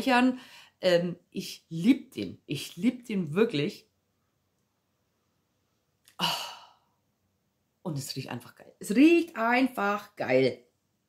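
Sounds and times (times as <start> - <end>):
woman sighing: 6.2 - 6.9.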